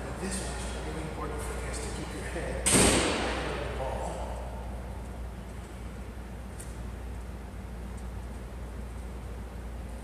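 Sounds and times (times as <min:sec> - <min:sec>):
sharp bang echoing in a hall: 0:02.6 - 0:03.8.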